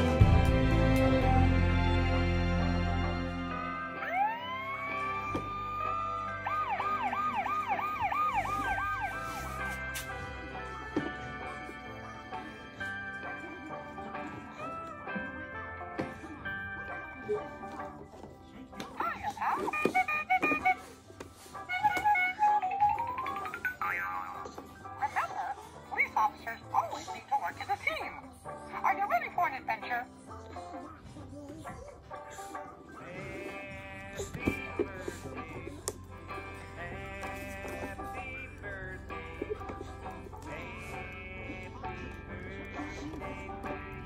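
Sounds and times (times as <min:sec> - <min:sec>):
electronic toy melody: 0:03.9 - 0:09.8, 0:19.5 - 0:24.4.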